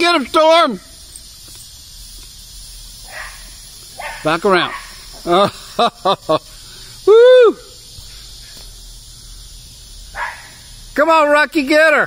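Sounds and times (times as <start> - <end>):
steady low hiss: 0.0 - 12.0
dog barking: 3.1 - 5.0, 10.2 - 10.6.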